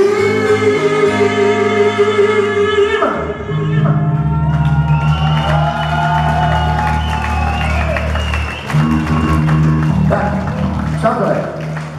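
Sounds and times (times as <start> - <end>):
live rock band: 0.0 - 11.9.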